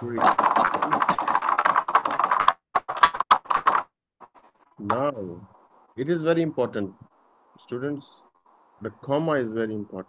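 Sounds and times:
typing on computer keyboard: 0.0s - 3.9s.

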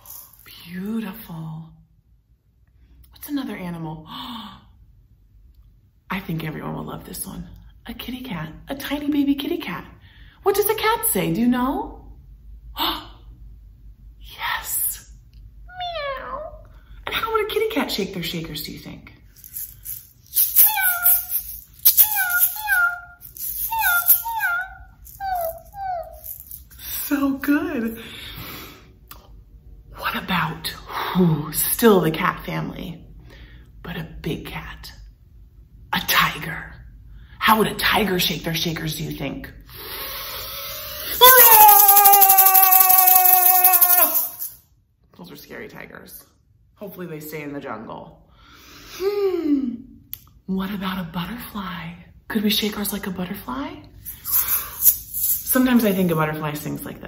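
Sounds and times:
hand shakers rattling: 19.3s - 27.0s, 41.1s - 44.6s, 54.0s - 56.0s
woman imitating kitten mews: 20.4s - 26.5s, 41.2s - 44.5s.

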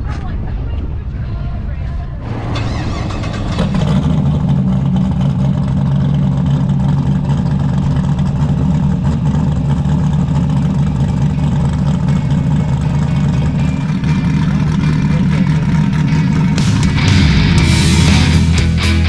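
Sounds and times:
vee eight engine idling: 0.0s - 19.0s.

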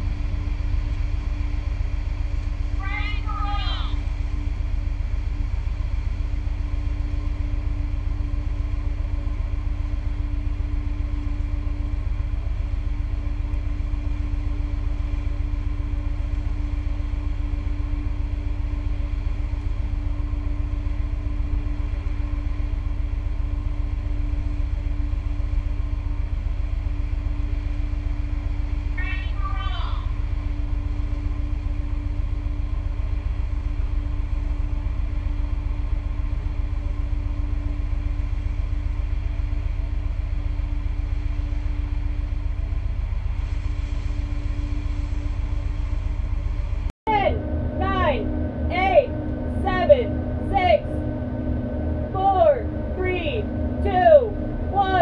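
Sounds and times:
ship machinery rumble and hum: 0.0s - 55.0s.

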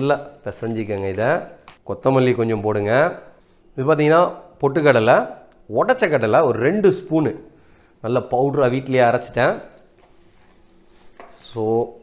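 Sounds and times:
person talking: 0.0s - 3.2s.

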